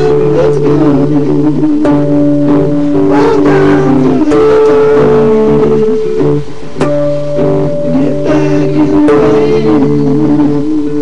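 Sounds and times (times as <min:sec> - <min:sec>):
instrumental rock music: 0:00.0 - 0:11.0.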